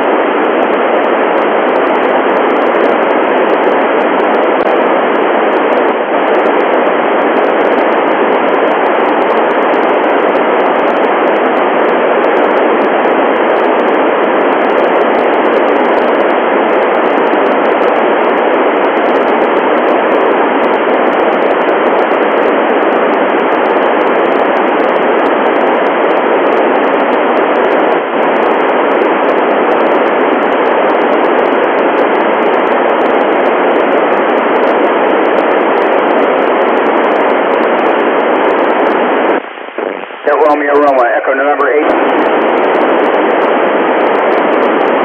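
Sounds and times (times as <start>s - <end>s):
radio receiver hiss: 0.0s - 45.0s.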